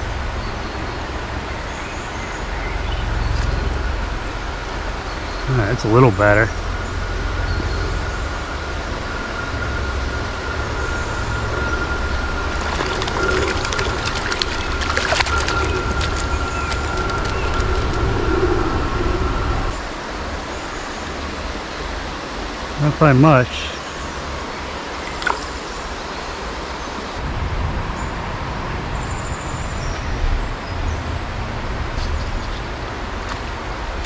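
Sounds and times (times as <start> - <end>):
thin steady whine: 0.0 - 27.4
low rumble: 2.5 - 20.4, 27.2 - 33.2
fish splashing in water: 12.6 - 18.3, 25.0 - 25.6.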